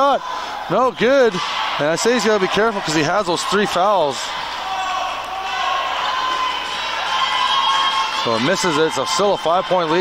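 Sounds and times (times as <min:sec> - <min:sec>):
crowd voices echoing: 0:00.0 - 0:10.0.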